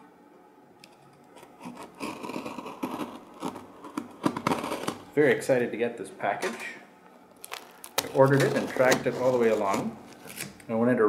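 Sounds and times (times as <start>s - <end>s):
knife cutting cardboard: 1.4s - 5.4s, 7.5s - 10.7s.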